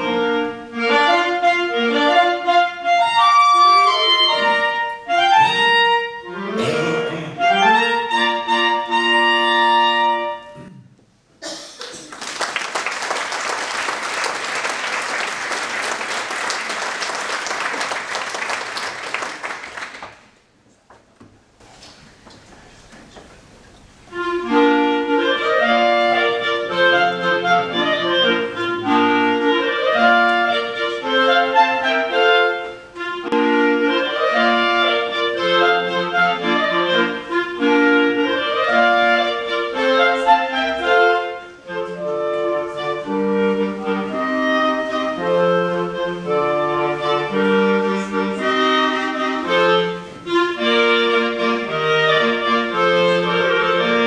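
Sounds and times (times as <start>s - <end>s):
clarinet ensemble playing: 0.0s - 10.8s, 24.0s - 54.0s.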